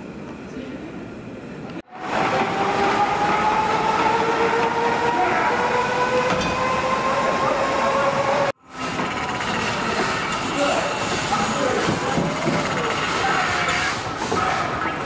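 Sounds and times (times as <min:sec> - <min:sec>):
noisy hum: 0:00.0 - 0:15.0
hand-cranked machinery whirring: 0:02.0 - 0:15.0.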